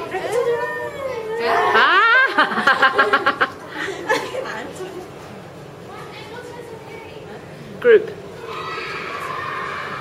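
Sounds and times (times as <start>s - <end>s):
children squealing: 8.4s - 10.0s.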